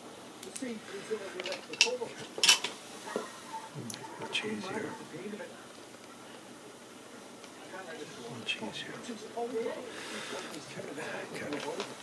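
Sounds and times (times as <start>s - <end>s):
metal tools clinking: 1.4s - 2.8s.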